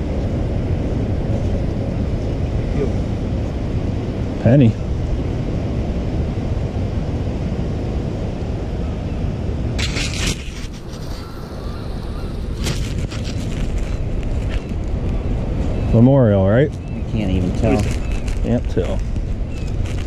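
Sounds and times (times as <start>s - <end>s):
wind buffeting microphone: 0.0s - 20.0s
scraping rattling noises: 12.4s - 15.1s.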